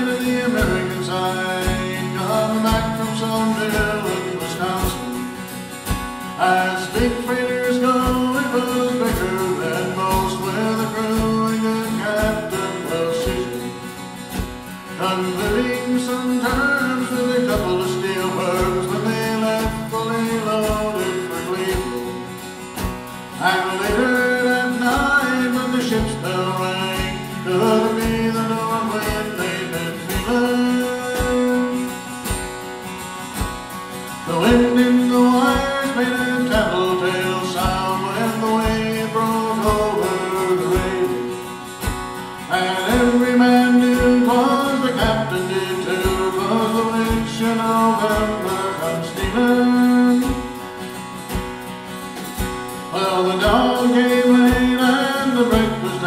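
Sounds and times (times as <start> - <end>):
acoustic guitar: 0.0 - 56.0
steady drum beat: 0.0 - 56.0.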